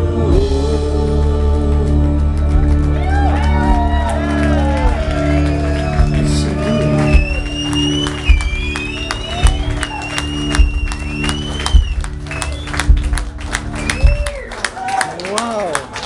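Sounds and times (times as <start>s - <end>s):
crowd clapping and cheering: 1.4s - 16.0s.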